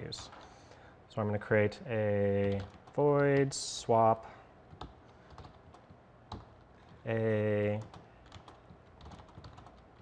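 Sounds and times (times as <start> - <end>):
keyboard keystrokes: 7.8 - 10.0.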